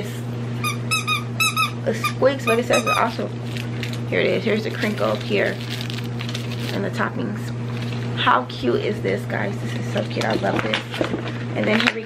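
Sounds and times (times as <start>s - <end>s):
dog toy squeaking: 0.6s - 3.2s.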